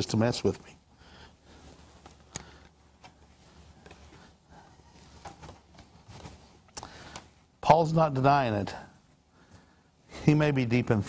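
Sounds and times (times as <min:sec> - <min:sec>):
soft knocks and rustles: 0:03.0 - 0:06.7.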